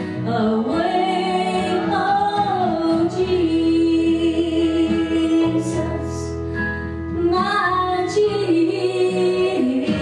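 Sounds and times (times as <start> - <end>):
woman singing gospel song: 0.2 - 6.3, 7.2 - 10.0.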